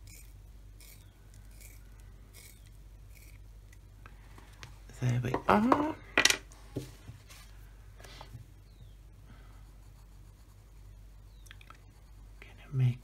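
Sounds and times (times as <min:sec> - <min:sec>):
pencil scratching on paper: 0:09.6 - 0:11.0, 0:11.8 - 0:13.0.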